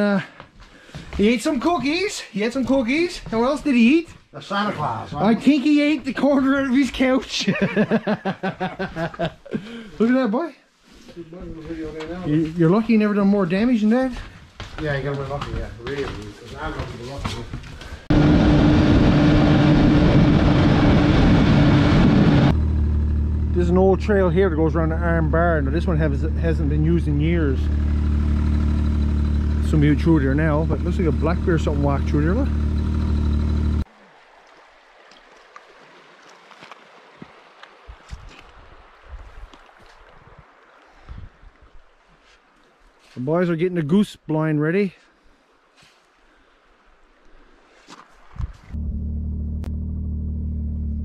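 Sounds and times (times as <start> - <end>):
wind rushing: 18.1 - 22.5
snowmobile engine: 18.1 - 33.8
snowmobile track noise: 18.1 - 33.8
water lapping among rocks: 33.8 - 43.2, 45.1 - 48.8
wind on microphone: 37.9 - 40.4.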